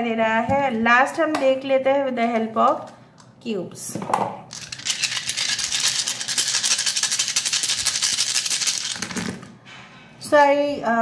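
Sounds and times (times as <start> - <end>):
plastic dice rattling in hands: 4.5 - 9.5.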